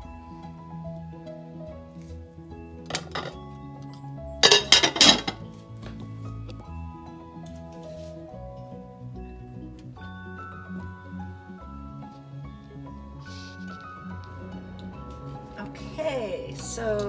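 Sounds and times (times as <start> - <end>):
glass lid clinking on a crock: 4.4 - 5.4.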